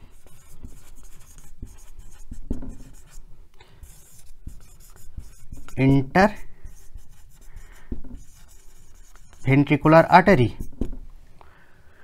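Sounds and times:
marker writing on whiteboard: 0.0s - 11.0s.

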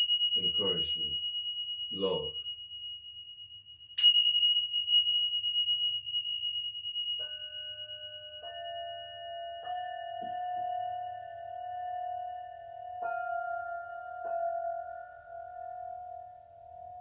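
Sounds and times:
high singing bowl ringing: 0.0s - 17.0s
lower singing bowls struck: 4.0s - 17.0s.

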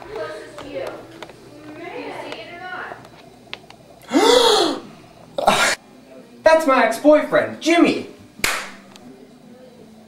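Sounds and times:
breathy gasp with voiced cry: 4.1s - 4.9s.

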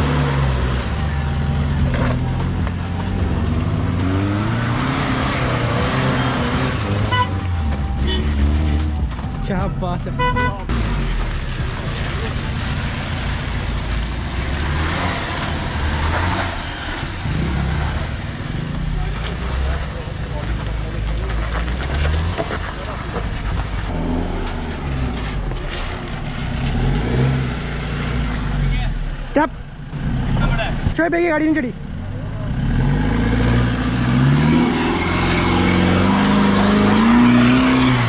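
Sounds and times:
off-road engines rumbling: 0.0s - 38.0s.

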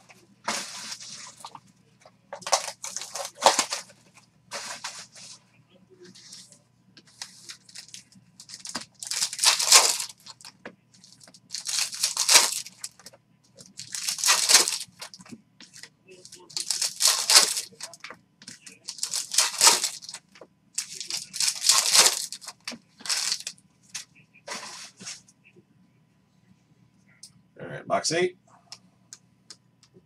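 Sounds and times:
foil wrappers tearing and crinkling: 2.4s - 3.9s, 7.2s - 15.2s, 16.3s - 20.2s, 20.8s - 23.5s.

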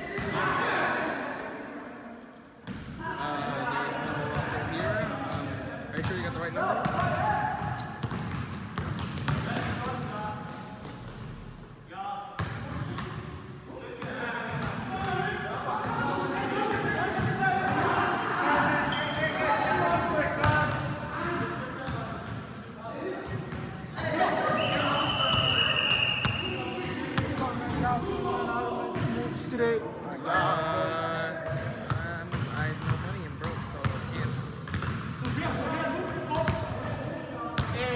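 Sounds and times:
basketball bouncing on gym floor: 6.8s - 9.8s, 31.4s - 35.4s.

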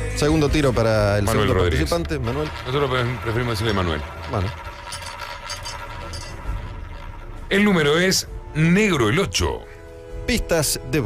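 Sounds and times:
roulette ball clicking: 1.5s - 7.2s.

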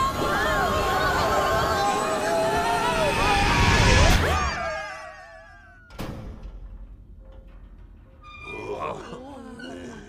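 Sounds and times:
voice-like cries and grunts: 8.4s - 10.0s.

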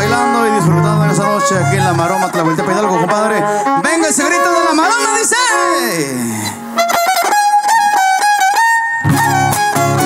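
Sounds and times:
strummed guitars: 0.0s - 10.0s
violin playing: 0.0s - 10.0s.

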